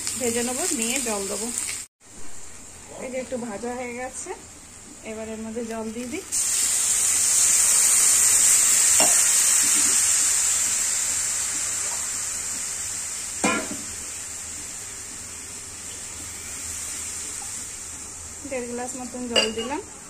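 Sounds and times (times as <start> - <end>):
water hissing in hot oil: 0.0 - 1.9, 5.1 - 20.0.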